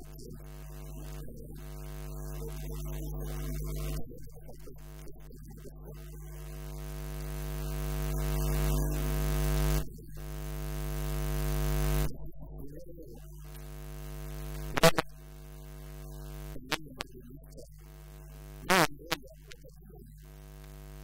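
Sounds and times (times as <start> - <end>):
electrical mains hum: 6.0 - 12.0, 13.3 - 16.8, 20.2 - 21.0.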